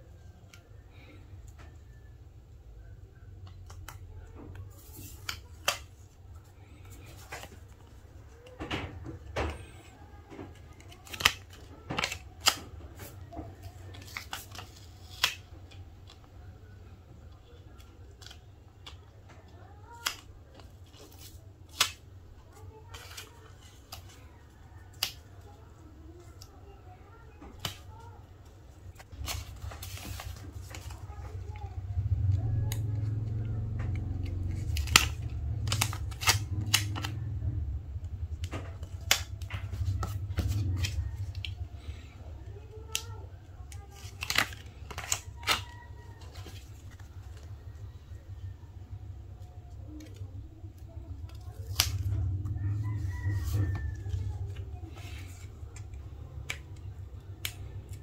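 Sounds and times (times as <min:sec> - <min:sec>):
low steady hum: 0:00.0 - 0:58.0
paper backing peeling and crackling: 0:03.2 - 0:58.0
fingertips pressing stickers: 0:32.3 - 0:37.6.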